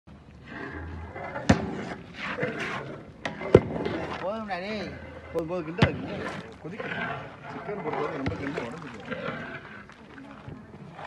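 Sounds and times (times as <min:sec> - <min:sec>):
rustling scrape: 0:00.5 - 0:09.9.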